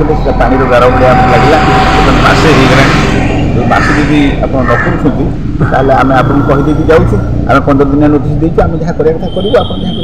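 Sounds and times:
steady tone: 0.0s - 10.0s
traffic rumble: 0.0s - 10.0s
voices: 0.0s - 10.0s.

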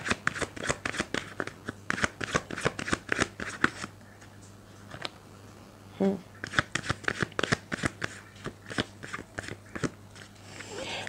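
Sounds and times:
cards being shuffled: 0.0s - 3.9s, 6.4s - 10.8s.

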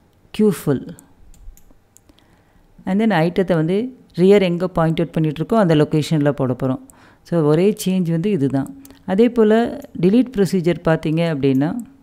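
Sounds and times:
person speaking: 0.3s - 1.1s, 2.8s - 12.0s.

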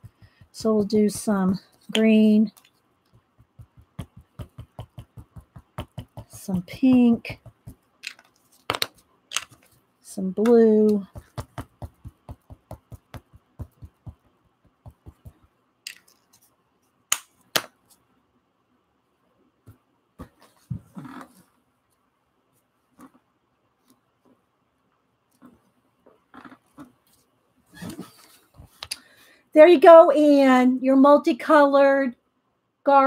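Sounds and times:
stamp knocking on paper: 0.0s - 2.2s, 3.2s - 7.9s, 10.4s - 15.5s
ink pad tapping on rubber stamp: 0.0s - 9.6s, 10.4s - 15.5s.

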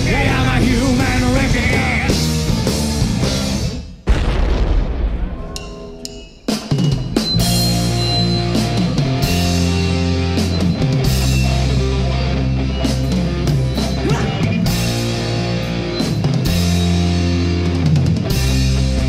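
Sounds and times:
rock band playing: 0.0s - 4.0s, 5.2s - 19.0s.

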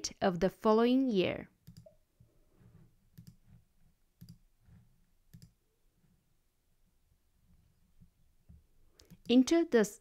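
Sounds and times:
computer mouse clicks: 1.6s - 2.0s, 2.6s - 3.6s, 4.2s - 5.6s, 8.9s - 9.4s.

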